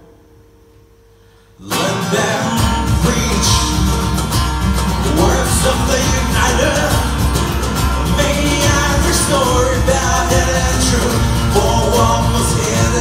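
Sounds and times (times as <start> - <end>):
strummed acoustic guitars: 1.6 - 13.0
steady low beat: 9.0 - 13.0.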